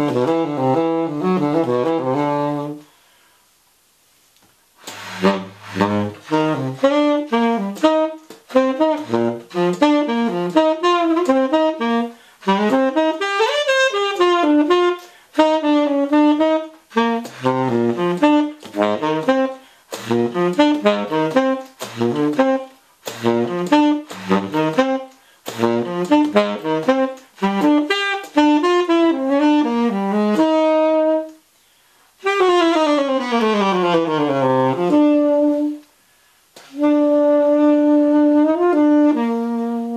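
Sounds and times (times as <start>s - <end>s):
tenor saxophone jazz solo: 0.0s - 3.3s, 4.7s - 39.9s
player breathing: 2.8s - 3.6s, 31.5s - 32.2s.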